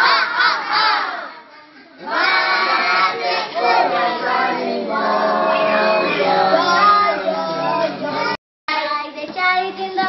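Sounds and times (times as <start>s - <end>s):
children singing: 0.0s - 8.4s.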